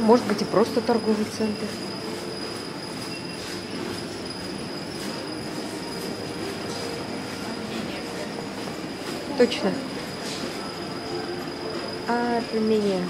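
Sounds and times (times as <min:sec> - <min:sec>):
faint high whine: 0:00.0 - 0:13.0.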